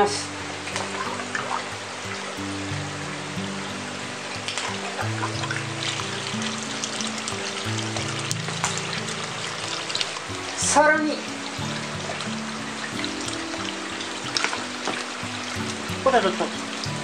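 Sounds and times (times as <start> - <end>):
background music held notes: 0.0 - 17.0
water pouring over rocks: 0.0 - 17.0.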